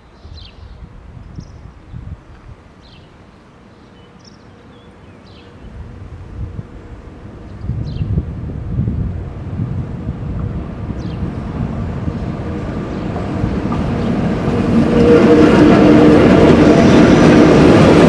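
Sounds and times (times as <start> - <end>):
approaching train rumbling: 0.0 - 18.0.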